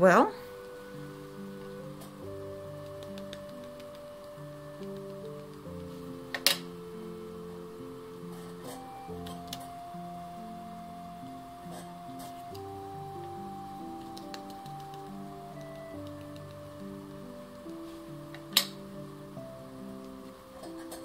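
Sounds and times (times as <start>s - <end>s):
soft slow background music: 0.0s - 21.0s.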